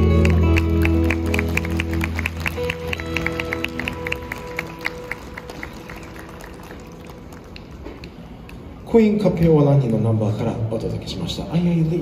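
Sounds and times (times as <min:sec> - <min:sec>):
audience clapping: 0:00.0 - 0:08.6.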